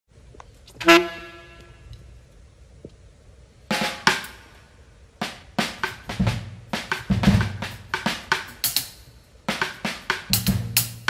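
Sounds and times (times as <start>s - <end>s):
saxophone honked note: 0.8s - 1.9s.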